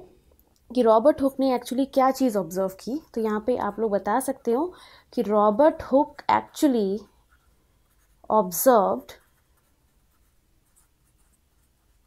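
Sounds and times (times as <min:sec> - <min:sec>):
pen scratching on paper: 0:05.4 - 0:12.0.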